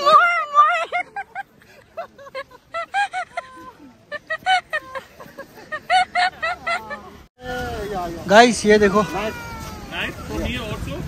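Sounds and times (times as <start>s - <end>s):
people's voices: 0.0s - 11.0s.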